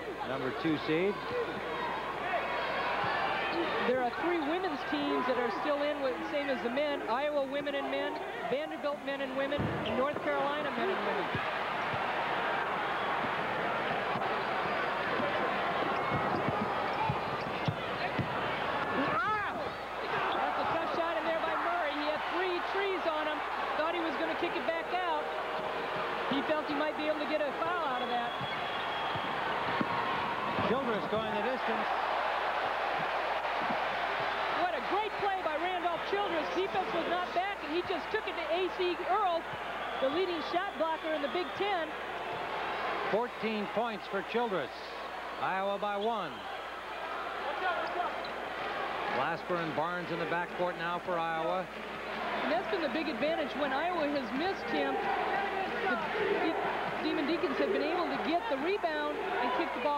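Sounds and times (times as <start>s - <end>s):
murmur of crowd voices: 0.0s - 59.9s
basketball bouncing on hardwood: 16.0s - 18.4s.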